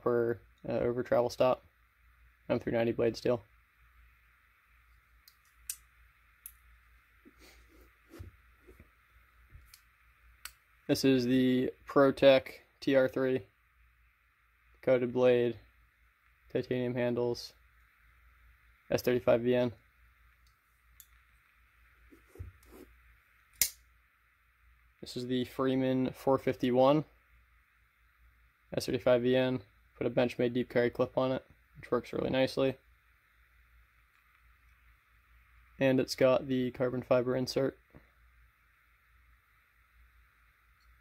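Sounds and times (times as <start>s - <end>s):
room hiss: 0.0s - 41.0s.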